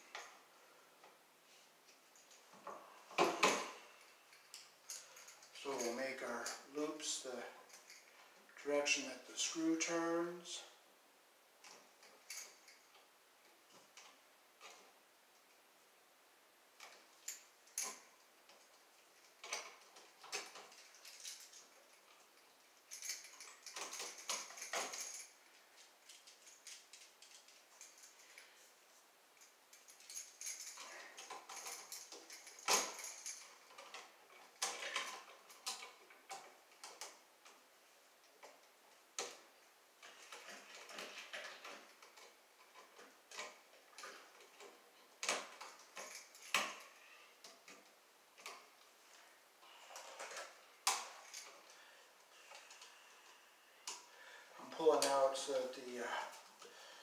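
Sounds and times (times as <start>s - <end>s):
pliers clicking and scraping on wire: 29.4s - 37.6s.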